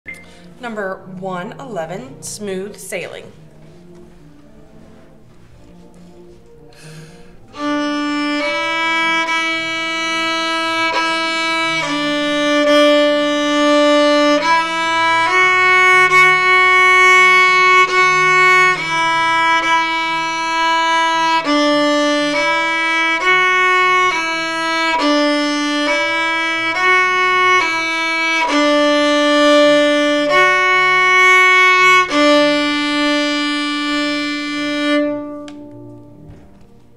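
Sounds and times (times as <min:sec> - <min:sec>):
solo violin melody: 0:07.4 - 0:36.5.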